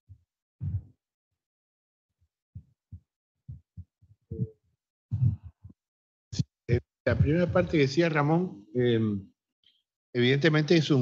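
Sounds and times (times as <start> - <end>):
microphone handling thumps: 0.6 - 0.9, 2.6 - 5.8, 6.4 - 7.8.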